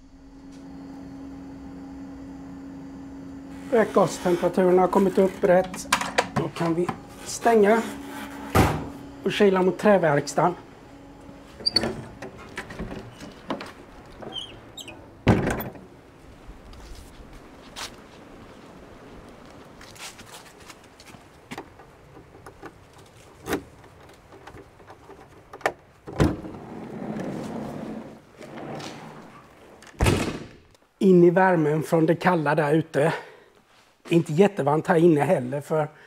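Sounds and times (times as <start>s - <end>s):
door thudding shut: 8.5s - 9.0s, 15.2s - 15.8s, 30.0s - 30.7s.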